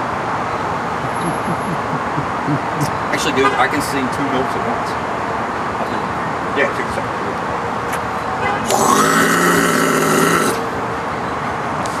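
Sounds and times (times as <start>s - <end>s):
man throat-singing: 8.6s - 10.7s.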